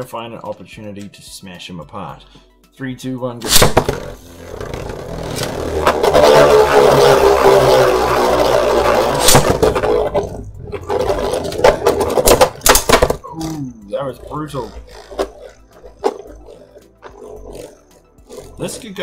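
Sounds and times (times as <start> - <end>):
spinning tops whirring: 3.5 - 19.0.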